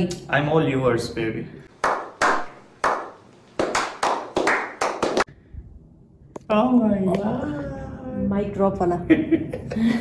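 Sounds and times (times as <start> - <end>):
person clapping: 1.8 - 5.3.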